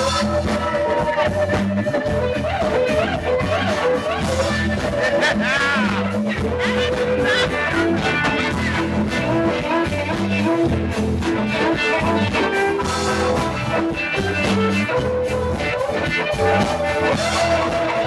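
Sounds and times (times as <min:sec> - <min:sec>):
live band music: 0:00.0 - 0:18.0.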